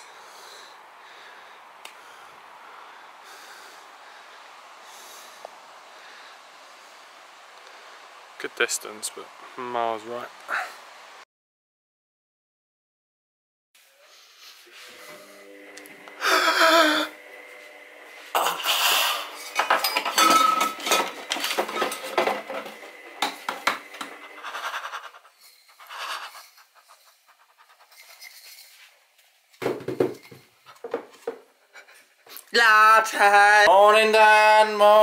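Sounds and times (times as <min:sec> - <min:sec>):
crockery and glass jar clinking: 0:19.4 - 0:23.4.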